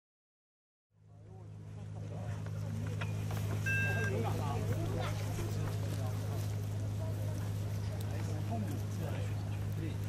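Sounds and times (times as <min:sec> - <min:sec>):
people chattering: 0:01.0 - 0:10.0
steady low hum: 0:01.0 - 0:10.0
short high beep: 0:03.6 - 0:04.2.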